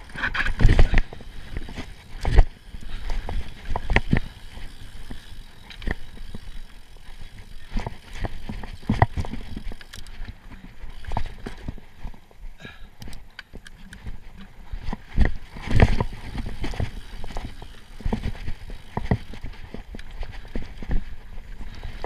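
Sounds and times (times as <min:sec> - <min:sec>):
bike rattling and clattering: 0:00.0 - 0:22.0.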